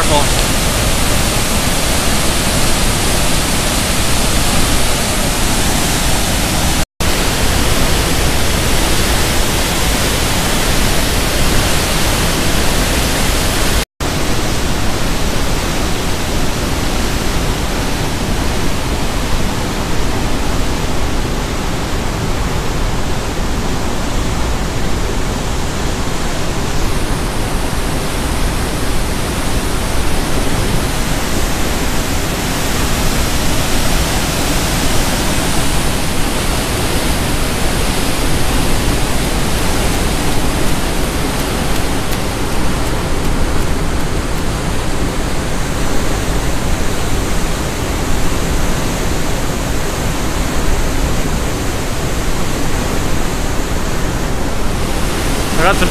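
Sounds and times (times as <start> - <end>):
water rushing through spillway: 0.0 - 55.9.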